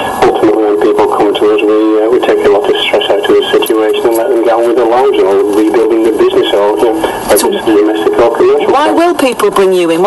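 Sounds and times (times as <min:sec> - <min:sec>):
person talking on radio: 0:00.0 - 0:09.2.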